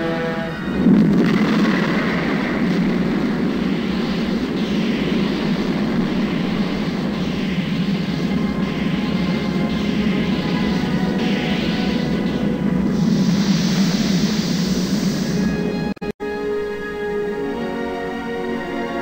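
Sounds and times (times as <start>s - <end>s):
rocket engines firing: 0.6s - 15.9s.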